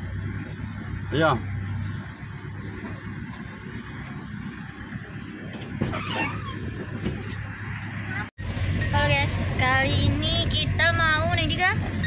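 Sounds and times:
car engine hum inside cabin: 0.0s - 12.0s
road noise: 0.0s - 12.0s.

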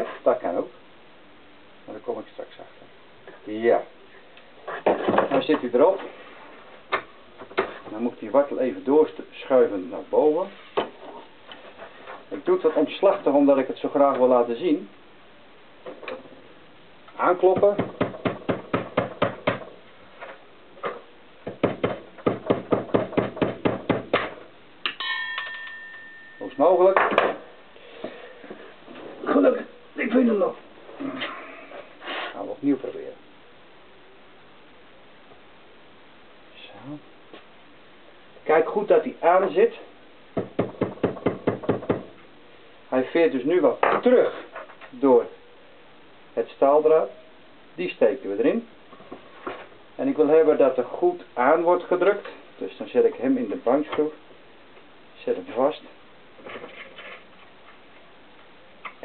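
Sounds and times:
metallic ringing: 24.9s - 26.8s.

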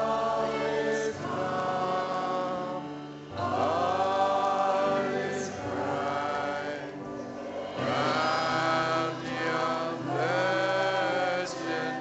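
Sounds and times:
piano: 0.0s - 12.0s.

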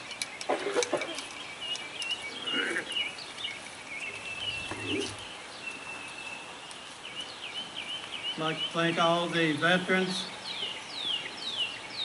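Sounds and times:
birds chirping and trilling: 0.0s - 12.0s
open-air background noise: 0.0s - 12.0s.

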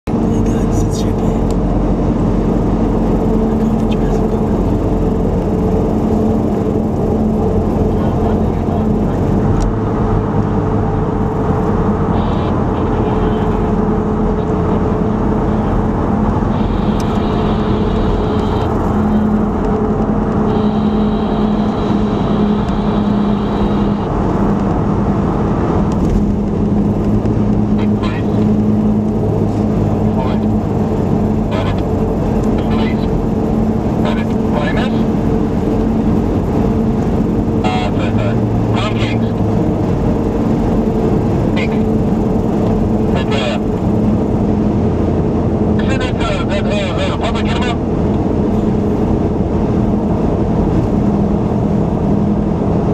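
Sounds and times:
car engine droning: 0.0s - 52.9s
tyre and road noise: 0.1s - 52.9s.

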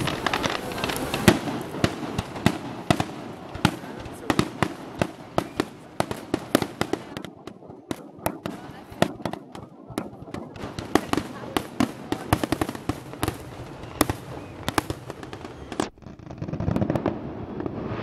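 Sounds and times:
fireworks bangs and crackles: 0.0s - 18.0s.

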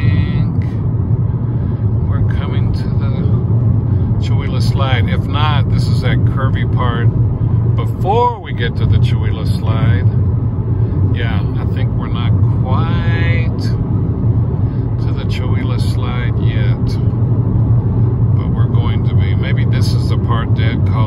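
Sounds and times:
car cabin road rumble: 0.0s - 21.0s
person speaking: 7.8s - 10.1s.

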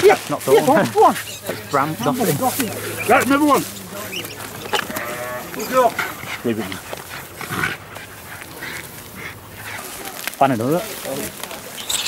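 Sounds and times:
sheep bleating: 4.6s - 5.9s.

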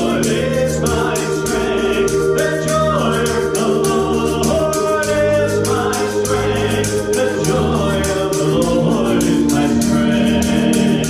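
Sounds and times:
accompaniment with chords and beat: 0.0s - 11.0s
man singing gospel: 0.0s - 11.0s.

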